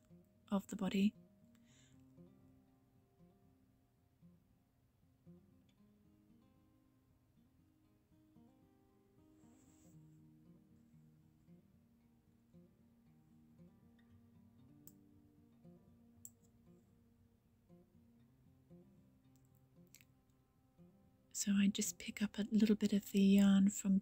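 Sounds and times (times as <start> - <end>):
faint plucked guitar-like music: 0.0 - 24.0.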